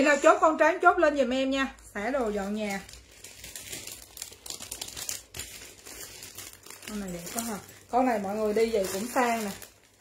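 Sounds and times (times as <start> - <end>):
handbag crinkling and rustling: 1.8 - 10.0.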